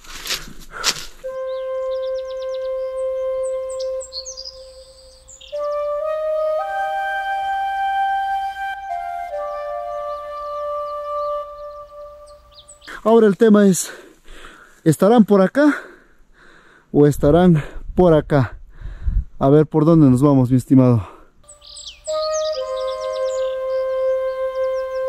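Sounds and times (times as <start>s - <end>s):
birds chirping: 0.7s - 15.4s, 21.4s - 25.0s
flute playing long notes: 1.2s - 12.9s, 21.5s - 25.0s.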